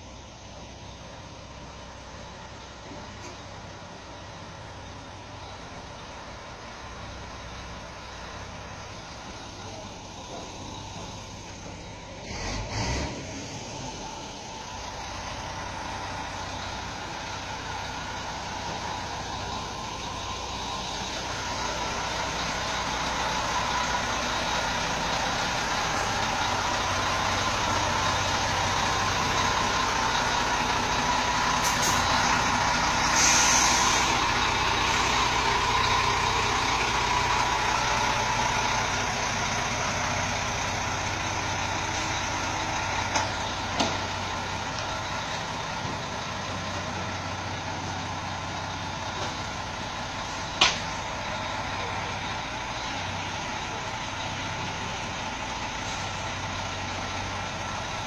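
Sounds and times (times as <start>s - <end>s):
truck diesel engine running: 0.0s - 58.0s
short hiss: 31.6s - 32.1s, 33.0s - 34.2s.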